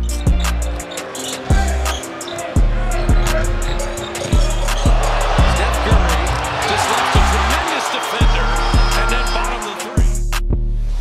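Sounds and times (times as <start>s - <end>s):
hip-hop beat: 0.0s - 10.6s
voice over beat: 4.3s - 10.2s.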